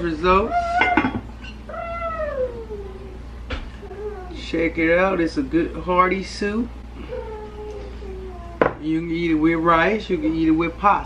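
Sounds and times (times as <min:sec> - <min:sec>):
cat meowing: 0:01.7 - 0:03.1.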